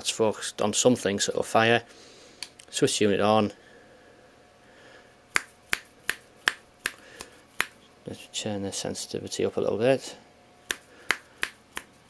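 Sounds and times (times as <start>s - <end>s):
fingers snapping: 5.3s - 7.8s, 10.7s - 11.9s.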